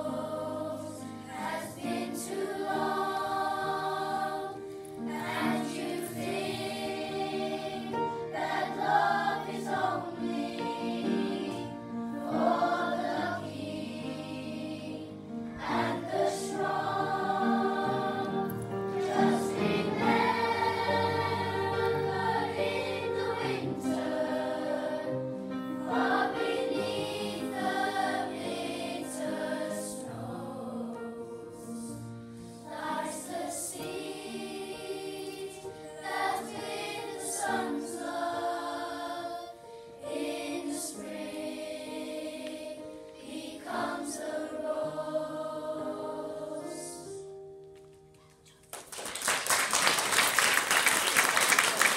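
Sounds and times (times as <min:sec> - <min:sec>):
children's choir singing: 0:00.0 - 0:47.4.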